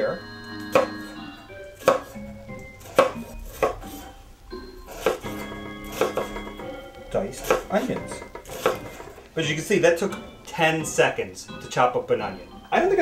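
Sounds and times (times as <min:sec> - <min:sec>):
background music: 0:00.0 - 0:13.0
knife chopping on wooden board: 0:00.7 - 0:01.2, 0:01.8 - 0:02.2, 0:02.8 - 0:04.1, 0:04.9 - 0:06.7, 0:07.4 - 0:09.2.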